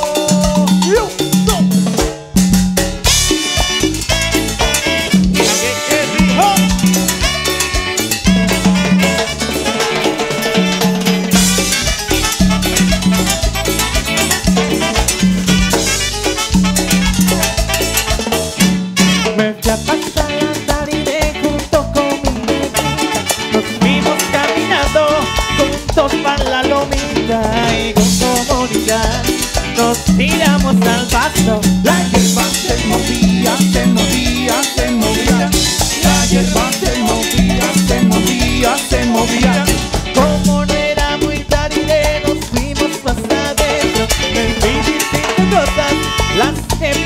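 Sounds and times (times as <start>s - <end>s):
live band playing: 0.0s - 47.0s
repeating bass line: 0.0s - 47.0s
saxophones: 2.5s - 20.5s, 22.0s - 26.1s, 43.6s - 47.0s.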